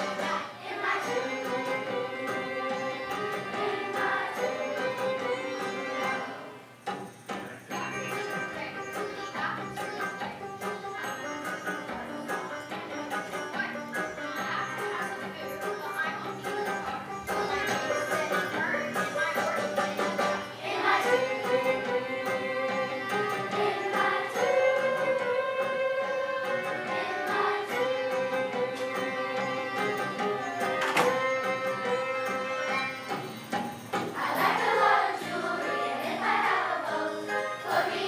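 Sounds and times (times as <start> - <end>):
school chorus singing: 0.0 - 6.5, 20.1 - 25.8, 26.4 - 29.6, 34.2 - 38.0
instrumental accompaniment: 0.0 - 38.0.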